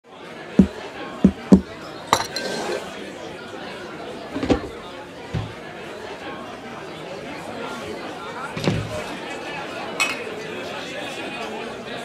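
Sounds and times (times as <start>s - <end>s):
crowd chatter: 0.0s - 12.0s
glass clinking on table: 1.3s - 2.8s, 10.0s - 10.2s.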